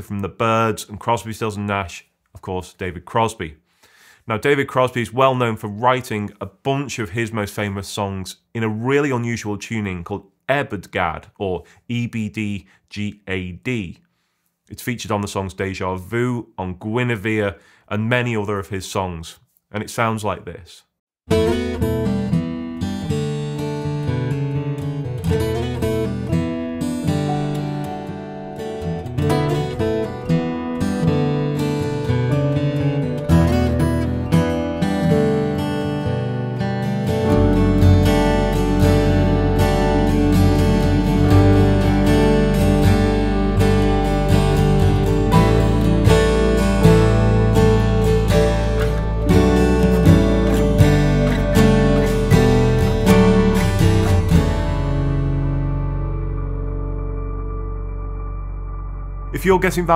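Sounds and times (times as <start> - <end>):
solo acoustic guitar: 21.3 - 59.7.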